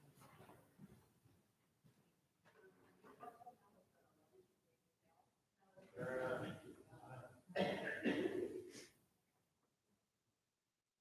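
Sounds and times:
person coughing: 0:07.6 - 0:08.8.

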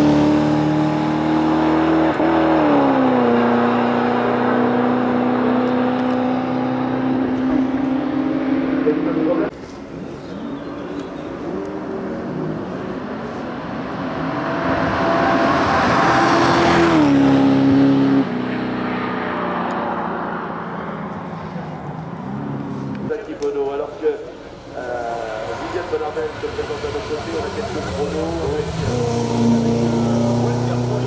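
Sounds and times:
race car engine at high revs: 0:00.0 - 0:09.5, 0:10.3 - 0:23.4, 0:24.6 - 0:31.0.

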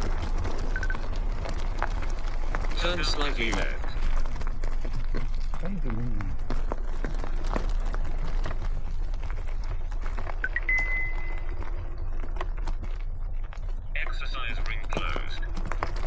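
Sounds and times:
bike rattling on rough trail: 0:00.0 - 0:05.6, 0:06.4 - 0:16.0
wind rumbling on microphone: 0:00.0 - 0:16.0.

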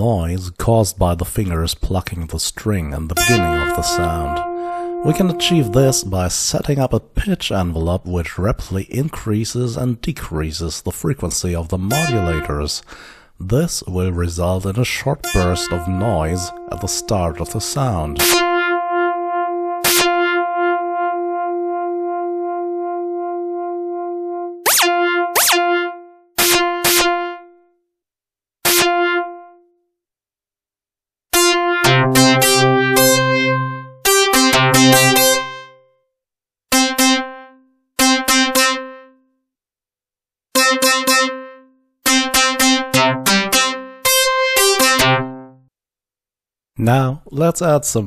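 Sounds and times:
synthesizer plucked guitar notes: 0:03.2 - 0:06.2, 0:11.9 - 0:12.7, 0:15.2 - 0:27.5, 0:28.7 - 0:29.5, 0:31.4 - 0:35.7, 0:36.7 - 0:39.1, 0:40.6 - 0:45.6.

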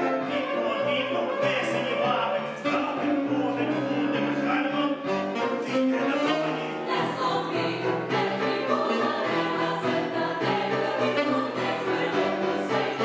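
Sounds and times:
women singing in harmony: 0:06.2 - 0:13.0.

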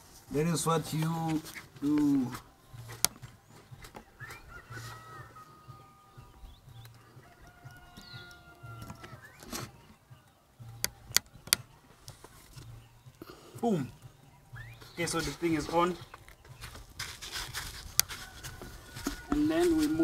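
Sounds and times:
rooster crowing: 0:04.2 - 0:06.4, 0:07.0 - 0:09.4, 0:18.0 - 0:20.0.

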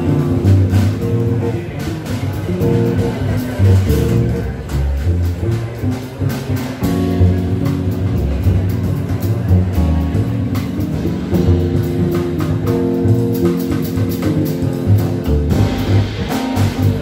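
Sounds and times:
keyboard chords: 0:00.0 - 0:04.7, 0:06.8 - 0:17.0
double bass: 0:00.0 - 0:17.0.

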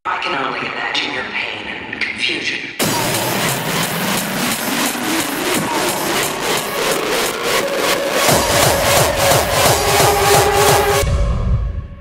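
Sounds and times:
fast heavy kick drum: 0:02.8 - 0:11.1
noisy synth build-up: 0:02.8 - 0:12.0.

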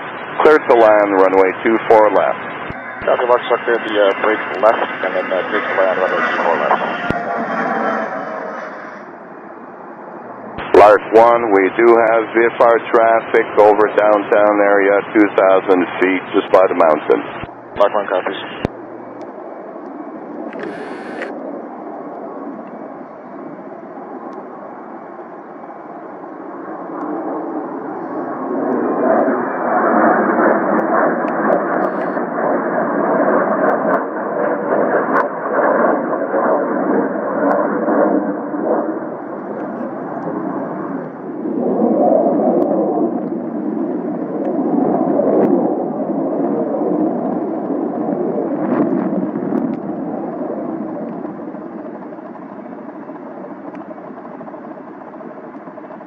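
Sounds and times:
radio transmission: 0:00.0 - 0:09.2, 0:10.4 - 0:18.9, 0:20.5 - 0:21.4, 0:31.4 - 0:32.2
jet engine: 0:00.0 - 0:56.0.

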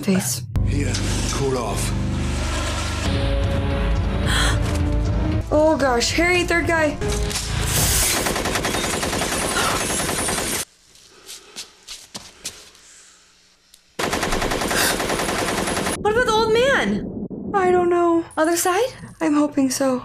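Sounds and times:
automatic gunfire: 0:08.2 - 0:10.6, 0:14.0 - 0:16.0.

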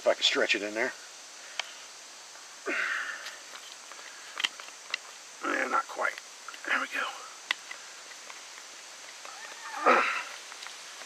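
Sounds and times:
man whispering: 0:05.4 - 0:07.4.

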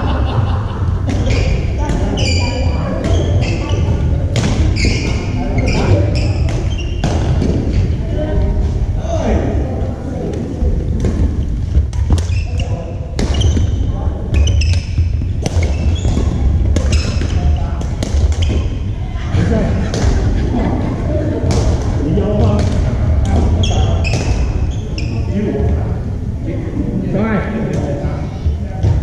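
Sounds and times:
shoes squeaking on wooden floor: 0:01.2 - 0:04.0, 0:04.6 - 0:08.0, 0:12.0 - 0:17.8, 0:23.6 - 0:25.3.

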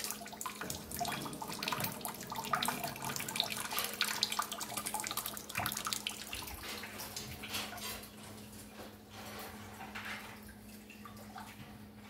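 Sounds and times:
faucet running into metal sink: 0:00.0 - 0:08.1.

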